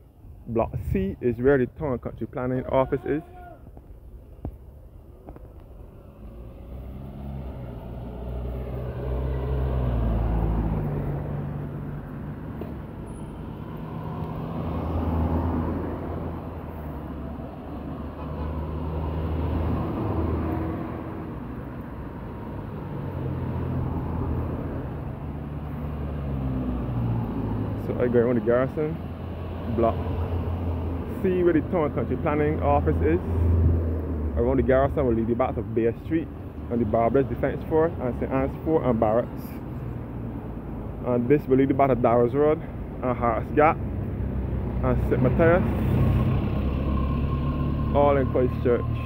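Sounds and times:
cars passing: 0:00.0 - 0:49.0.

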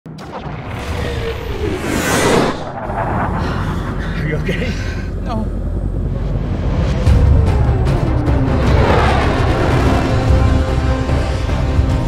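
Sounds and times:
low rumble: 0:00.2 - 0:11.1
drone whoosh: 0:00.2 - 0:12.0
film score music: 0:00.2 - 0:12.0.

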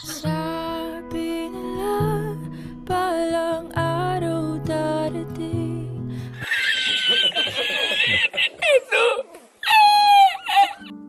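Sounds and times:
man's high-pitched squealing laughter: 0:06.4 - 0:10.9.

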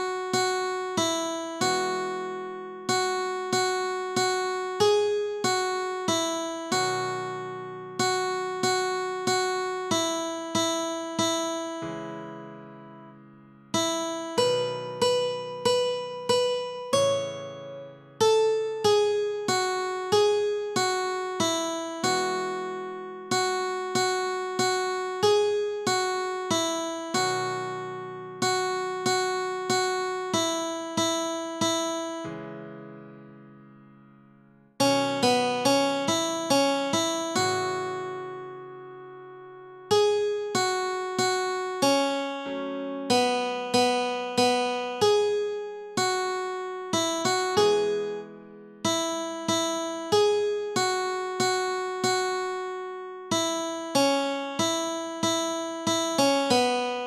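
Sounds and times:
plucked guitar melody: 0:00.0 - 0:32.4, 0:34.8 - 0:39.0, 0:39.9 - 0:57.0.

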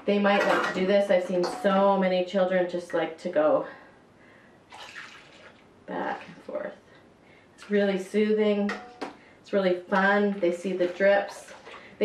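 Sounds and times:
water pouring into metal cup: 0:04.7 - 0:06.3
water splashing into metal bowl: 0:04.7 - 0:06.5.

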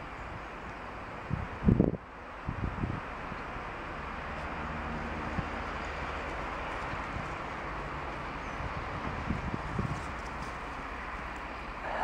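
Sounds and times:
wind buffeting microphone: 0:00.0 - 0:03.6, 0:04.6 - 0:11.4
steady outdoor hiss: 0:00.0 - 0:12.0.

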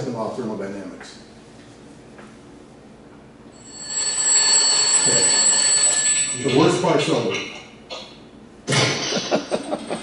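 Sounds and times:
alarm clock bells ringing: 0:03.6 - 0:06.8.

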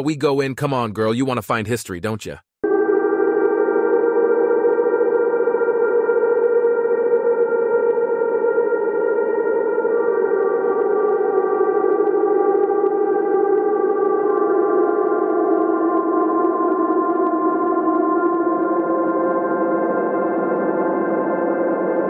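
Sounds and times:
ambient drone music: 0:02.6 - 0:22.0.

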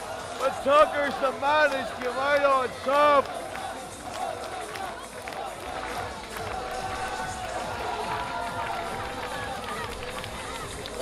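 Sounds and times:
crowd clapping and cheering: 0:00.0 - 0:11.0
audience shouts: 0:06.4 - 0:11.0.

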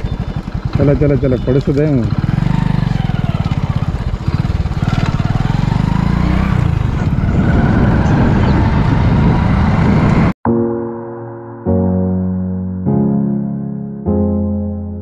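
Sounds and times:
motorcycle engine running: 0:00.0 - 0:10.4.

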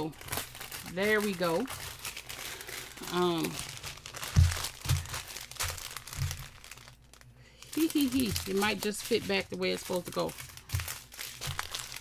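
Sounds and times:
plastic wrapping crinkling: 0:00.0 - 0:12.0.

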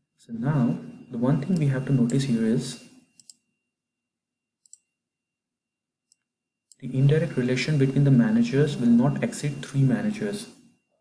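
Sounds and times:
computer mouse clicks: 0:03.2 - 0:03.4, 0:04.6 - 0:04.9.

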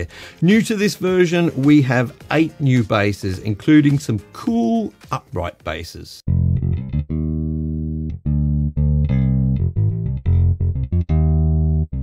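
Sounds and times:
electric bass notes: 0:06.2 - 0:12.0.

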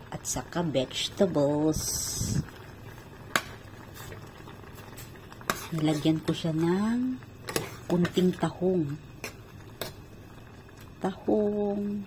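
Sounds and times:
broth bubbling in a pot: 0:00.0 - 0:12.0.

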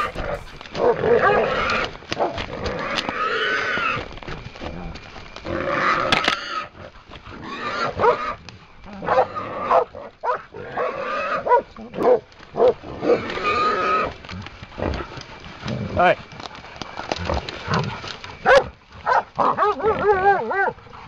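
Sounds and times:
hog squealing: 0:00.0 - 0:01.9.

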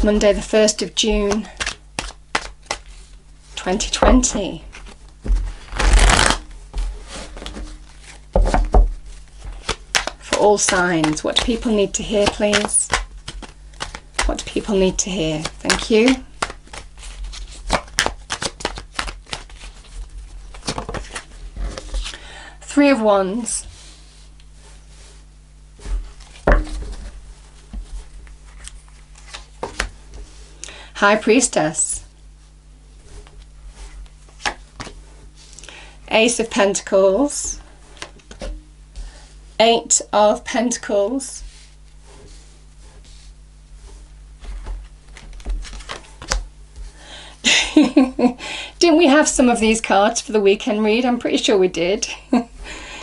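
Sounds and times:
faint steady hum: 0:00.0 - 0:53.0
cards shuffled by hand: 0:01.0 - 0:22.2, 0:25.8 - 0:30.4, 0:33.1 - 0:35.6, 0:41.4 - 0:46.9
sharp card slaps: 0:01.6 - 0:02.9, 0:09.6 - 0:11.5, 0:12.1 - 0:14.4, 0:34.3 - 0:35.0
cards tapping and sliding on cloth: 0:09.4 - 0:19.7.

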